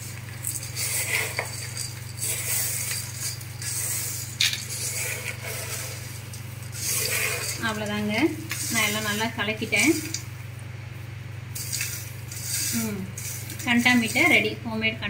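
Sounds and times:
steady low hum: 0:00.0 - 0:15.0
dry snack rattling in metal pot: 0:00.2 - 0:10.2, 0:11.6 - 0:14.6
person speaking: 0:12.7 - 0:15.0.

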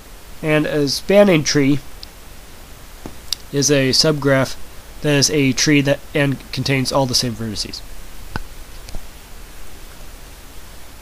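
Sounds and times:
microphone background hiss: 0:00.0 - 0:11.0.

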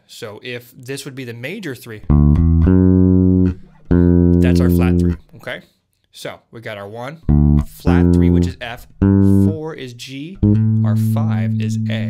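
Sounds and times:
clean electric bass notes: 0:02.0 - 0:05.3, 0:07.3 - 0:09.8, 0:10.4 - 0:12.0.

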